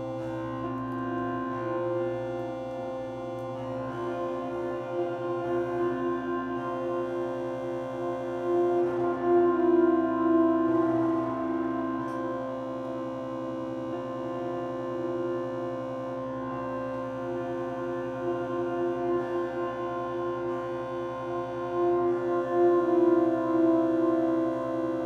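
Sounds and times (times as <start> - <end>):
sustained guitar and organ drone: 3.7 - 25.0.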